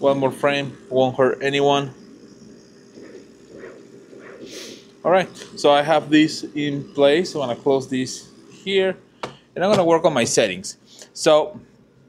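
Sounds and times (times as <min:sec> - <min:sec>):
laser engraver motors whirring: 0:00.0 - 0:12.0.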